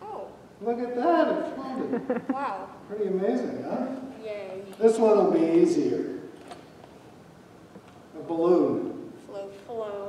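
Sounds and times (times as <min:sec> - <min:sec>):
man speaking: 0:00.6 - 0:02.1, 0:02.9 - 0:04.0, 0:04.8 - 0:06.2, 0:08.2 - 0:09.0.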